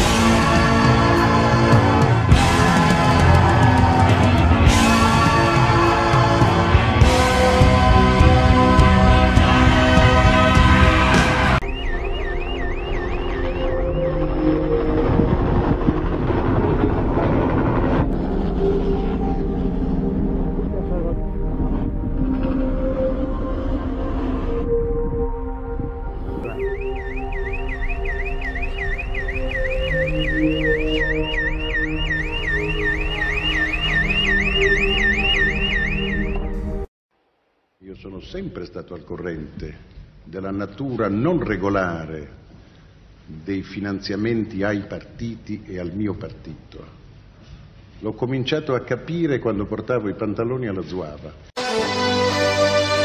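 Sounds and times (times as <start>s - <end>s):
music: 0.0s - 36.9s, 51.6s - 53.0s
electronic siren warbling: 11.1s - 36.9s.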